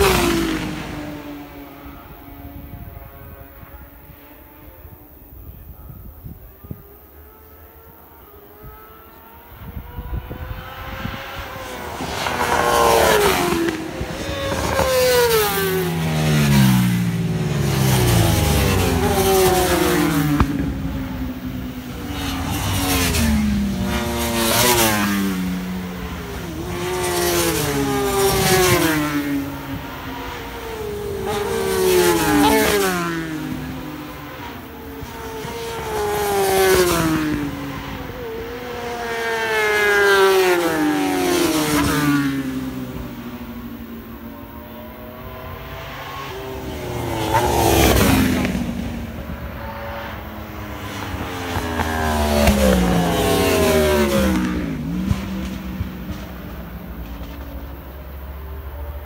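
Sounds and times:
racing motorcycles passing at speed: 0.0s - 59.0s.

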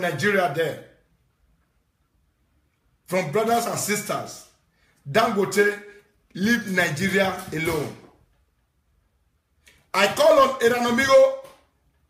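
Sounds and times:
man speaking: 0.0s - 1.0s, 3.0s - 8.2s, 9.8s - 11.7s.

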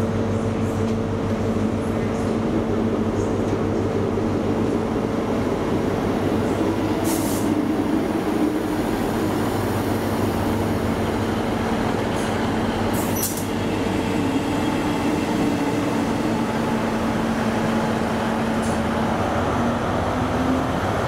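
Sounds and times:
diesel train drone: 0.0s - 21.0s.

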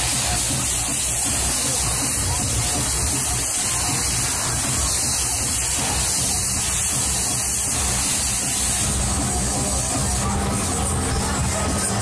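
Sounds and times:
dance music over sound system: 0.0s - 12.0s
pulsing bass: 0.0s - 12.0s
steady rushing hiss: 0.0s - 12.0s.

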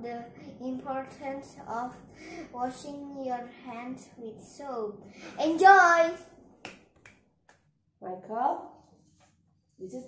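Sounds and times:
boy speaking: 0.0s - 6.3s.

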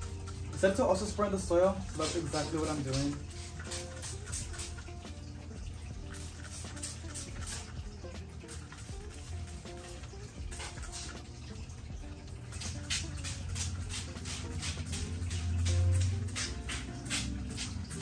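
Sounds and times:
quiet background music: 0.0s - 18.0s
spray bottle squirts: 1.6s - 5.3s, 6.0s - 11.7s, 12.4s - 18.0s.

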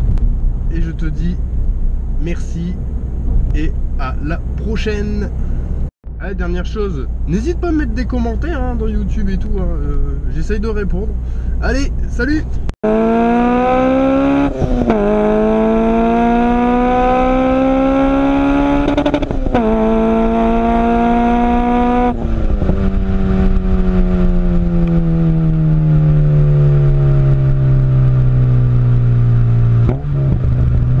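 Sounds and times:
car engine accelerating: 0.0s - 31.0s.

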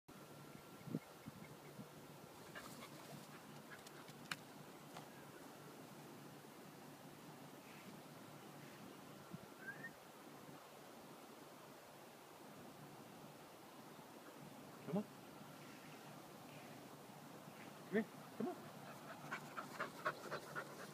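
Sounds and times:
puppy panting: 18.6s - 20.9s.

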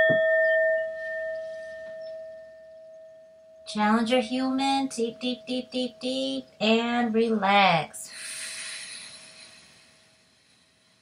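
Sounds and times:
singing bowl ringing: 0.0s - 5.8s.

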